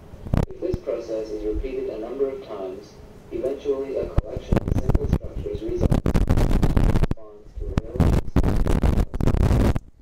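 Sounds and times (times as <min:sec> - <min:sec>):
film clicks and crackle: 0:04.1 - 0:09.9.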